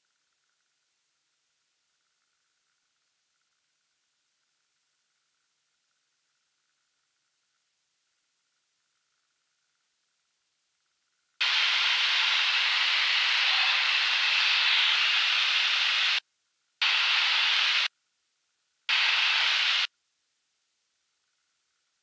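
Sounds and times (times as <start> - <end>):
radio hiss bursts: 11.4 - 16.2, 16.8 - 17.9, 18.9 - 19.9.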